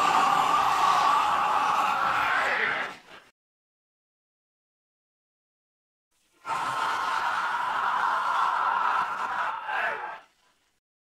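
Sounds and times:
breathy hoarse vocal sound: 0.0 - 3.2.

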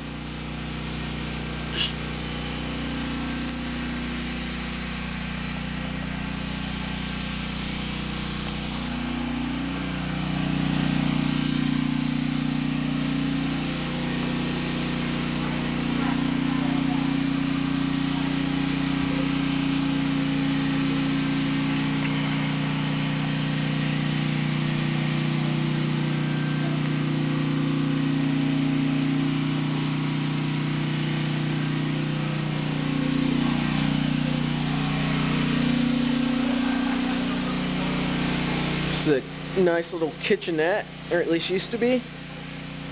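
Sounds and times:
generator engine humming: 0.0 - 42.9.

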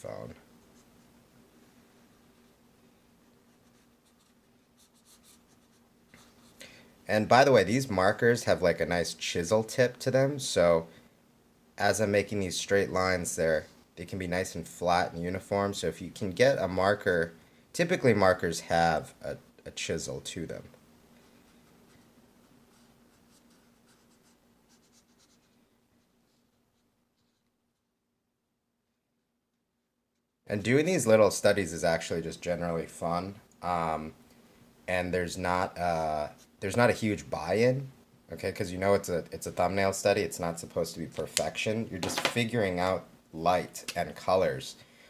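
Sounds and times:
marker scratching on paper: 3.5 - 6.6, 22.7 - 25.5.

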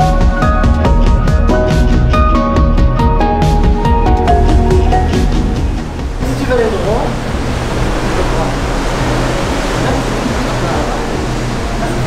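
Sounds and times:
low ship engine hum: 0.0 - 12.0
sea and wind rushing: 2.6 - 12.0.

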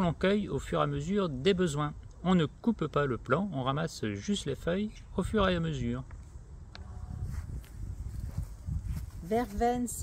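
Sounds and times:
low rumble on microphone: 6.1 - 9.3
footsteps on soil: 7.2 - 10.0.

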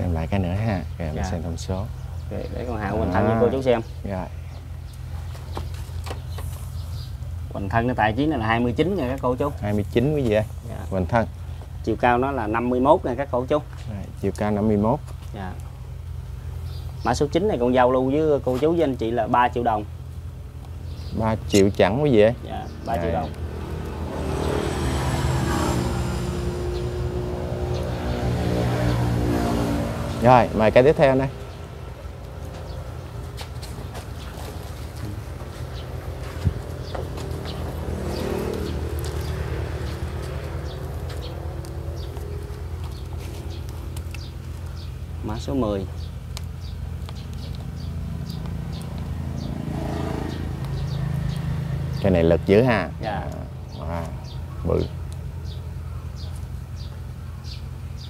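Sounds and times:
motor droning hum: 14.1 - 52.8.

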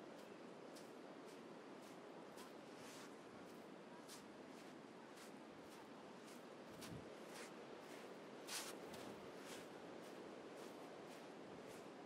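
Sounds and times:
footsteps crunching in sand: 0.0 - 12.0.

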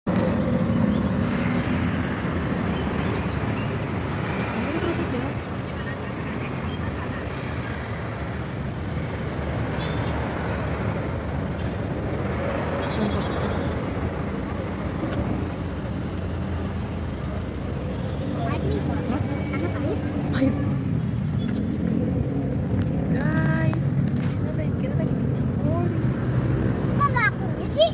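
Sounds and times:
car engine and road rumble: 0.0 - 27.9.

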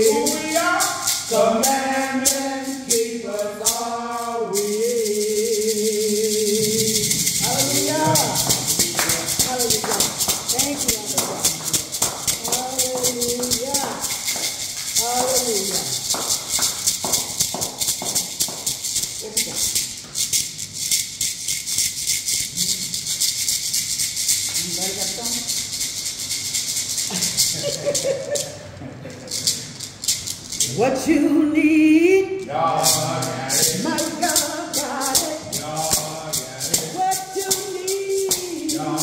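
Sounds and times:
people singing: 0.0 - 17.4, 30.7 - 39.0
beaded gourd shaker rattling: 0.0 - 31.2, 32.3 - 39.0.

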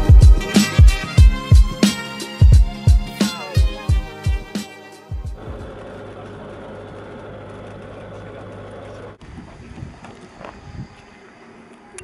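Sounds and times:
music: 0.0 - 5.7
light aircraft engine and propeller drone: 5.4 - 12.0.

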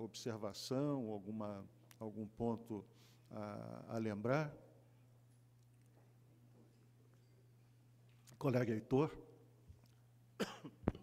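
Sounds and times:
man coughing: 10.4 - 10.8.

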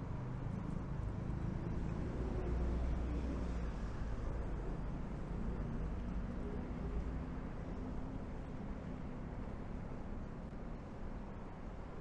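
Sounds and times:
low rumble of car traffic: 0.0 - 12.0.

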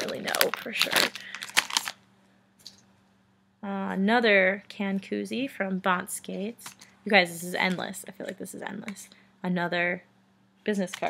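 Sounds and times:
plastic bag crinkling: 0.0 - 2.0.

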